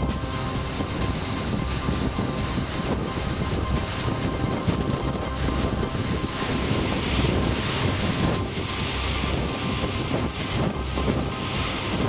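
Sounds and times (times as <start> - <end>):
boat engine rumble: 0.0 - 12.0
rushing bow wave and wake: 0.0 - 12.0.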